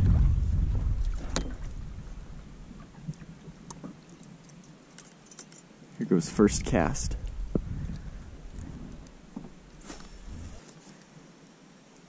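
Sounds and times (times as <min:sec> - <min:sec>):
water and wind rumble: 0:00.0 - 0:10.7.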